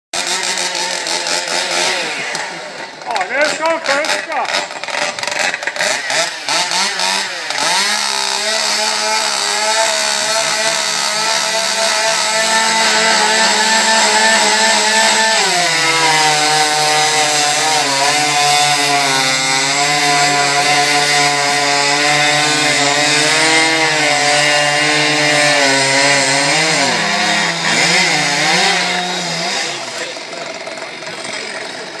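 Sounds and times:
chainsaw cutting log: 0.2s - 32.0s.

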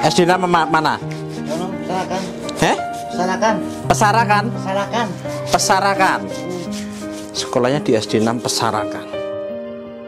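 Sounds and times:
background music: 0.0s - 10.0s
sponge scrubbing wet skin: 5.3s - 8.7s.

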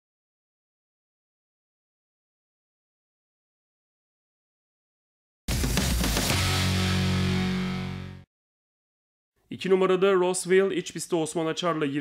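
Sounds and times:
rock music sting: 5.5s - 8.2s.

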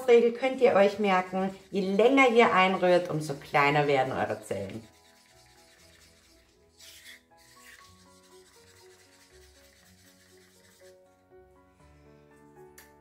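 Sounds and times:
faint background music: 0.0s - 13.0s
stir stick scraping in cup: 0.5s - 11.2s.

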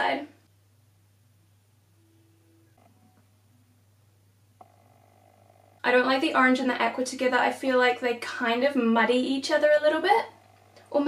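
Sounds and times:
woman speaking: 0.0s - 0.4s, 5.8s - 11.0s
faint low hum: 0.0s - 11.0s
faint buzz: 0.3s - 11.0s.

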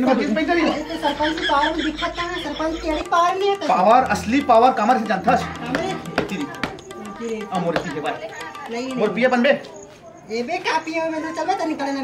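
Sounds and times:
men talking: 0.0s - 9.7s.

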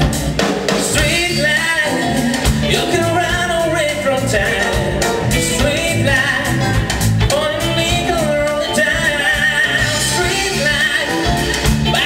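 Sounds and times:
smooth jazz band playing: 0.0s - 12.0s
man singing lead vocal: 0.8s - 12.0s.

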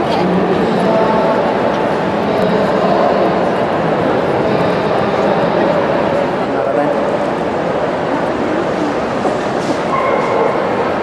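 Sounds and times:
murmur of many voices: 0.0s - 11.0s
dogs barking: 9.9s - 10.8s.

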